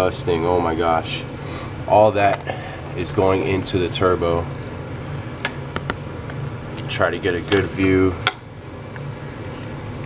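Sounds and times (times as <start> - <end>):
background machinery hum: 0.0 - 10.0.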